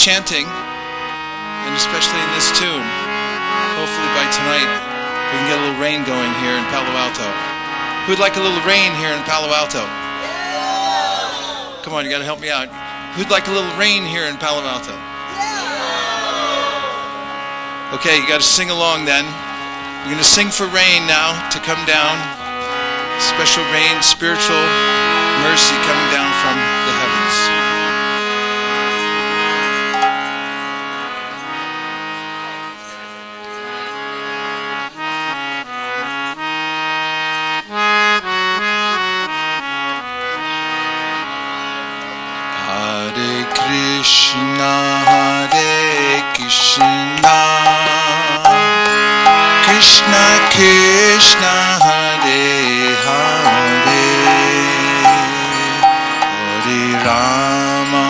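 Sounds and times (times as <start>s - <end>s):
harmonium playing: 0.0s - 58.0s
man chanting: 42.6s - 58.0s.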